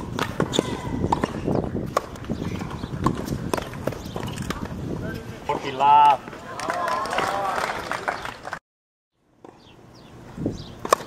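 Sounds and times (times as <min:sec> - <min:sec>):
tennis ball hit by rackets: 0:00.0 - 0:04.6, 0:10.8 - 0:11.0
ball bouncing on hard court: 0:00.1 - 0:04.7.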